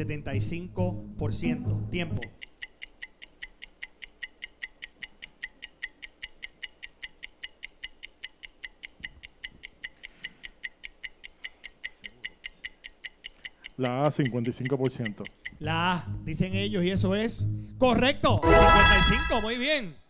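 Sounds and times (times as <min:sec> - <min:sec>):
electronic countdown ticking: 0:00.0 - 0:17.7, 0:18.4 - 0:19.8.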